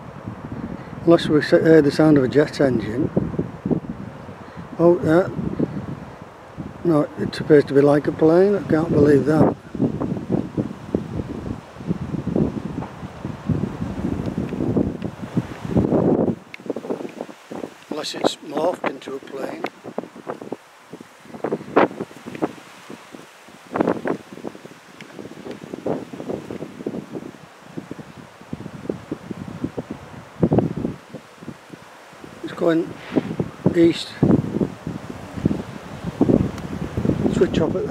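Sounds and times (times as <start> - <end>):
wind buffeting microphone: 0.0 - 37.9.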